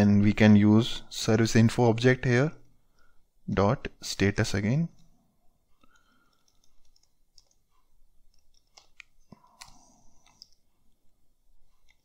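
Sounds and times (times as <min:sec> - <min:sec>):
keyboard keys clicking: 0:06.3 - 0:07.7.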